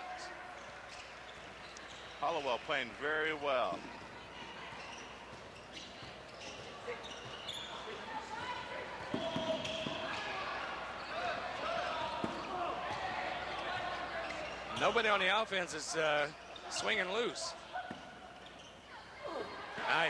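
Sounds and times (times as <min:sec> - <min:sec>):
players and crowd voices: 0:00.0 - 0:20.0.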